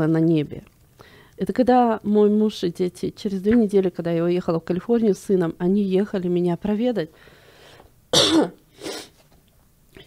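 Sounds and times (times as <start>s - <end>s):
woman coughing: 8.1s - 9.1s.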